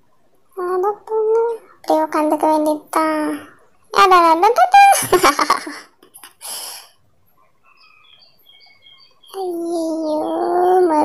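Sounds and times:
breathy hiss: 0:06.4 - 0:07.0
high bird chirps: 0:07.4 - 0:11.0.

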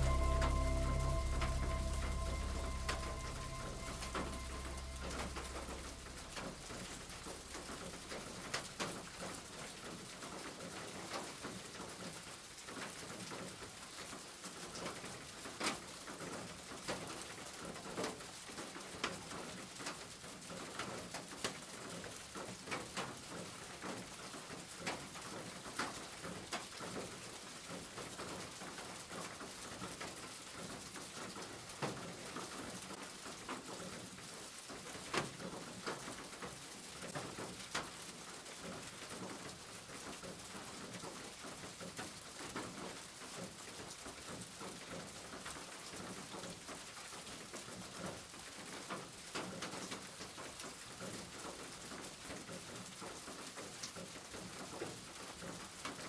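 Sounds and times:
steady rain hiss: 0:00.0 - 0:56.0.

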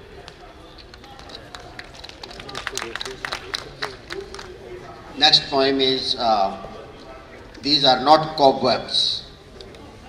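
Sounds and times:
audience clapping: 0:00.8 - 0:04.7.

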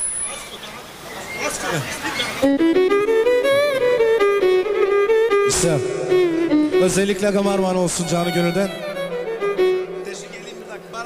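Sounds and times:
violin-like melody with vibrato: 0:02.4 - 0:11.0.

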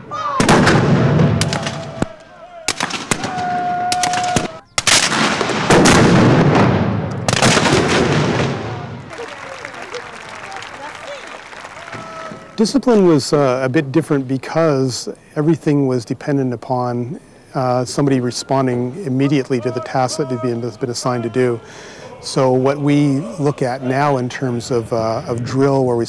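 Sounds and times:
field gun booms with echoes: 0:00.4 - 0:09.0.

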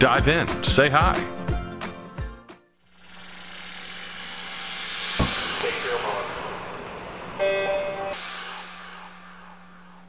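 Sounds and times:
rush of noise: 0:02.9 - 0:10.0.

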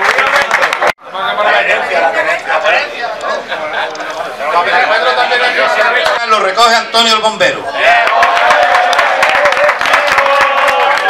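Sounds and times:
people talking: 0:01.0 - 0:07.9.

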